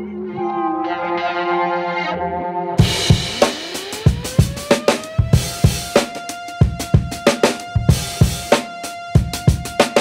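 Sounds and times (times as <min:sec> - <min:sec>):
drum kit beat: 0:02.8 - 0:10.0.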